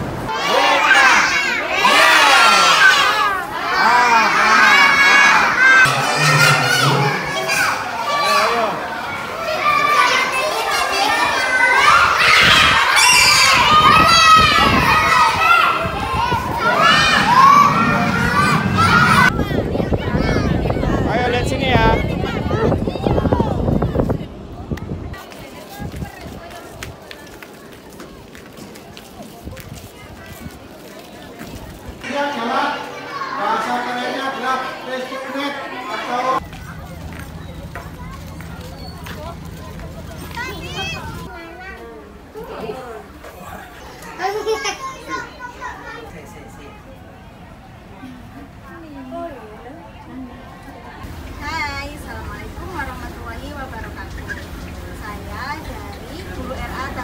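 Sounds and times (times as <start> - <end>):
people chattering: 0.0 - 57.0
children shouting and cheering: 0.1 - 21.2, 21.8 - 24.1, 31.0 - 46.2
footsteps on concrete: 25.2 - 32.0.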